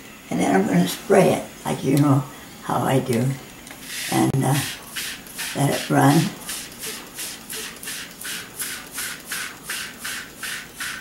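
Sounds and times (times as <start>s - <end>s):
spray bottle squirting: 3.8s - 11.0s.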